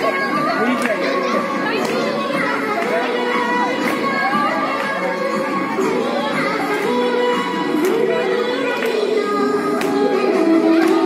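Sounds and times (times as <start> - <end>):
babble of children's voices: 0.0 - 11.0.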